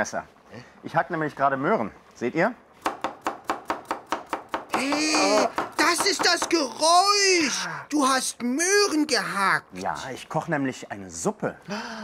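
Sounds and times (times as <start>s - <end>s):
knife chopping on wooden board: 2.8s - 6.6s.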